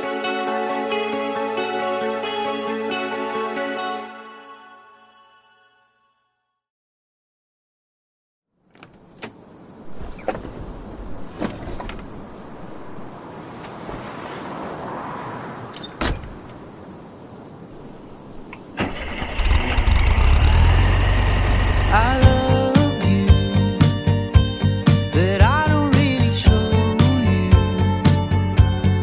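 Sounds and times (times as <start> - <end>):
music: 0.0 - 6.7, 21.9 - 29.0
car engine rumbling: 8.8 - 16.8, 18.8 - 22.7.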